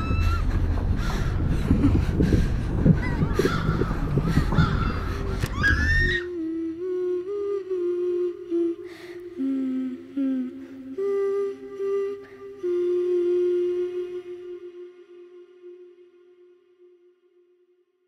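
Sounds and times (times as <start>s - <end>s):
dense rumbling soundscape: 0.0s - 7.1s
soft slow music: 0.0s - 17.7s
crows cawing: 3.4s - 5.7s.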